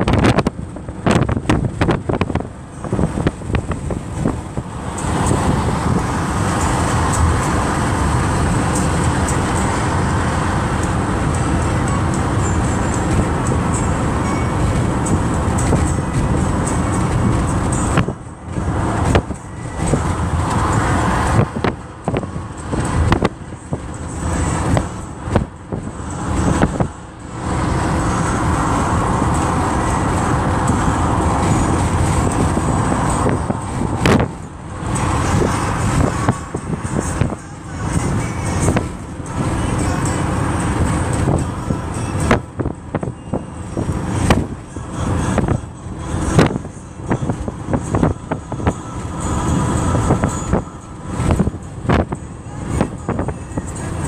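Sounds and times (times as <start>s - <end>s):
car cabin road and engine noise: 0.0s - 54.0s.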